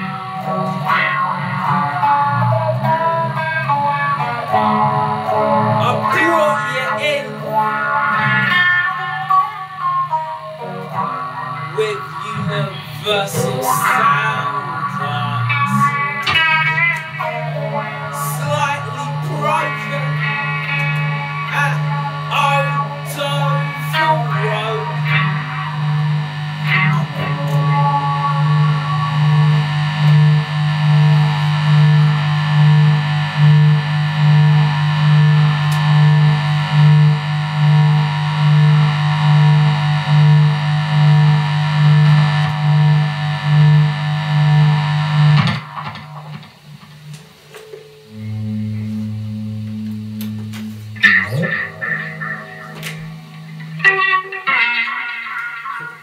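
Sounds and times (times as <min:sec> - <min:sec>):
electric guitar chord pulsing: 0:00.0 - 0:56.0
held guitar notes: 0:00.0 - 0:56.0
strummed guitar chords: 0:00.0 - 0:56.0.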